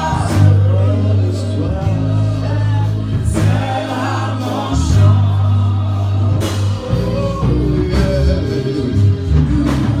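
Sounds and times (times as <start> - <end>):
deep steady bass line: 0.0 - 10.0
voices singing together: 0.0 - 10.0.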